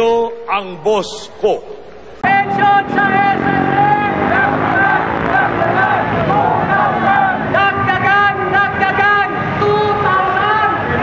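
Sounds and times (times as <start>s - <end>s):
street noise: 1.5s - 11.0s.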